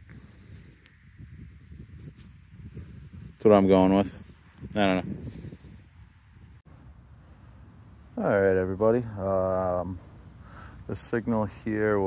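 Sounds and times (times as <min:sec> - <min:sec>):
faint wind rumble on microphone: 0:00.0 - 0:12.0.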